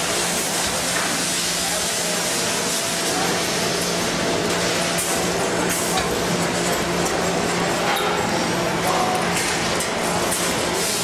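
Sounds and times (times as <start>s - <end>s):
machine hissing: 10.3s - 11.0s.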